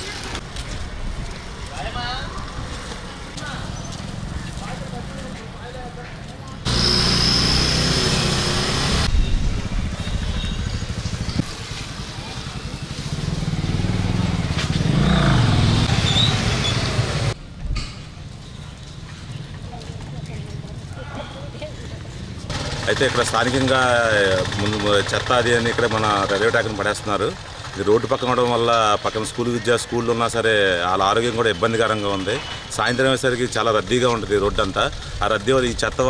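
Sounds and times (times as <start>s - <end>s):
street ambience: 0.0s - 36.0s
motor vehicle engine passing: 6.6s - 17.4s.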